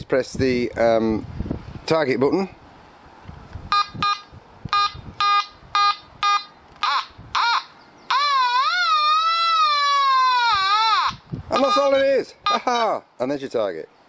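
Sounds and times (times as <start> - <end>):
metal detector chirps: 3.7 - 6.6, 11.6 - 12.6
metal detector beeps: 3.8 - 6.5, 11.6 - 12.1.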